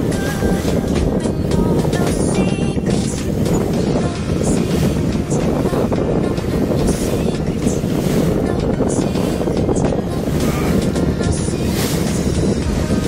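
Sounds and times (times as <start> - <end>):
faint music: 0.0 - 13.0
water splashing against boat hull: 0.0 - 13.0
wind buffeting microphone: 0.0 - 13.0.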